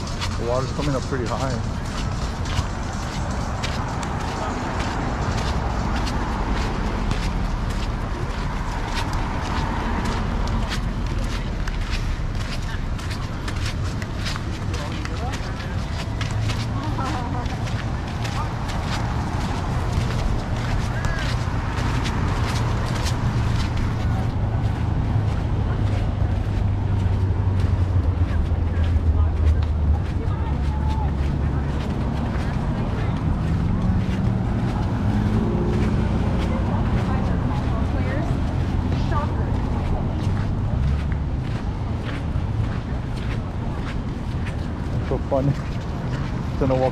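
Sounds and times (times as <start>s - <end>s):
footsteps: 0.0s - 46.9s
passersby talking: 0.0s - 46.9s
road traffic rumble: 0.0s - 46.9s.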